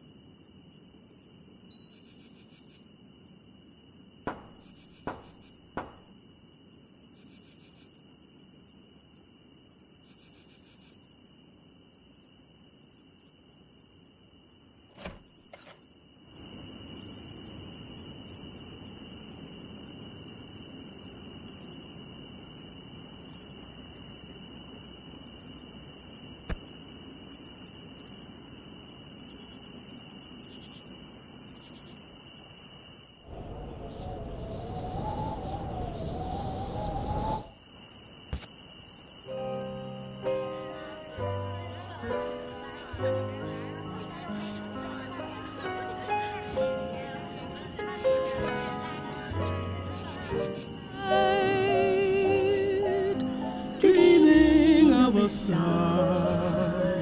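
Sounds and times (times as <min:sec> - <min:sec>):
crickets chirring: 0:00.0 - 0:57.0
piano music: 0:39.3 - 0:57.0.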